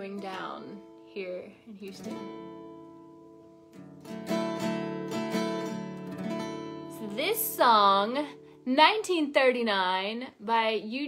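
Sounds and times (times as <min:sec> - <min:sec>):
acoustic guitar strumming: 0:00.0 - 0:09.2.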